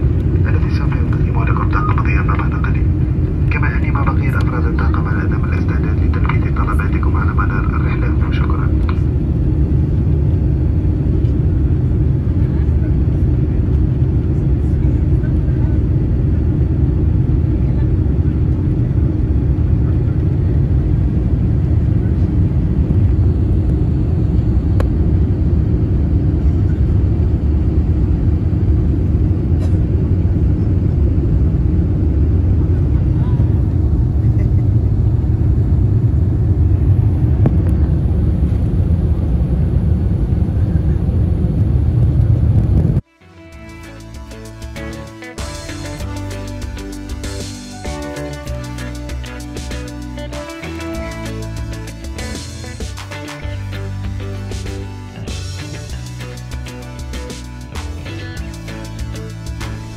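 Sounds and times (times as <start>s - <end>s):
airplane cabin engine rumble: 0.0s - 59.9s.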